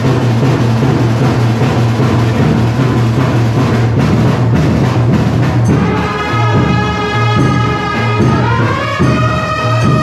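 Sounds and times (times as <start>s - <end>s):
brass band playing: 0.0s - 10.0s
drums: 0.0s - 10.0s.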